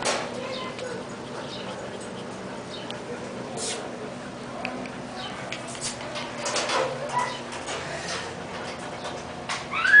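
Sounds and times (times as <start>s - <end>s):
puppies whining: 0.4s - 5.5s, 6.7s - 8.0s, 8.9s - 10.0s.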